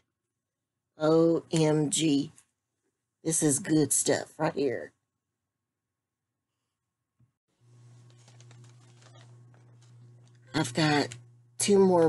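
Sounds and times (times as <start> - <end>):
low steady hum: 7.6 - 12.0
clicks and rustles of handling: 7.9 - 11.3.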